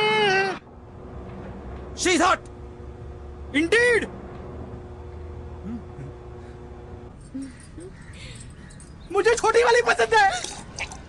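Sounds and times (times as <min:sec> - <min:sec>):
faint low hum: 0:00.7 - 0:09.4.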